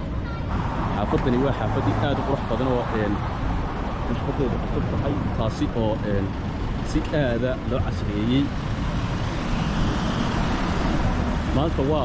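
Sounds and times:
steady traffic noise: 0.0 - 12.0
car driving past: 8.6 - 12.0.

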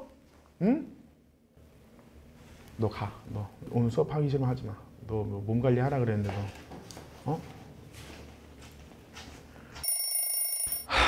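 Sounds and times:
high ringing tone: 9.8 - 10.9.

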